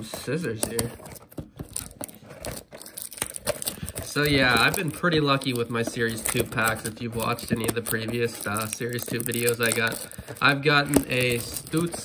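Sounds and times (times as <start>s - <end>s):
plastic shrink wrap crinkling: 0.0s - 12.0s.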